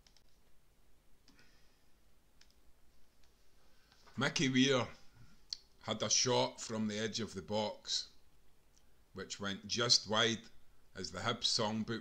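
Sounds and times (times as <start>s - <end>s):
faint click: 2.4s - 2.6s.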